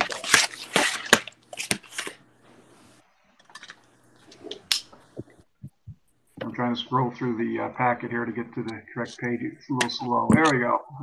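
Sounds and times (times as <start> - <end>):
soft low thumps: 5.2 - 6.6.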